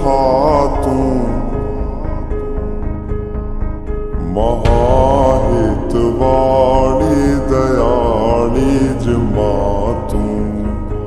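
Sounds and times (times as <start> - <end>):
person singing ornamented notes: 0.0 - 2.7, 4.2 - 11.0
music accompaniment: 0.0 - 11.0.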